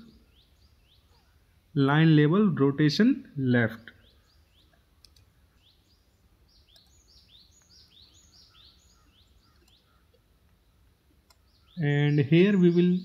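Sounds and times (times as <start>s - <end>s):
bird chirping: 0.0s - 1.7s, 3.7s - 13.0s.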